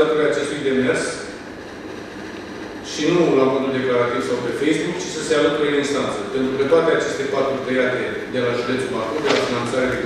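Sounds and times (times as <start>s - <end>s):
room background noise: 0.0s - 10.0s
man speaking: 2.9s - 10.0s.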